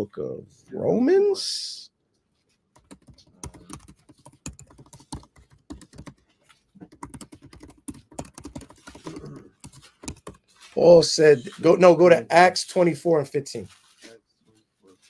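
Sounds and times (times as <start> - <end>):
keyboard typing clicks: 6.8 - 10.4.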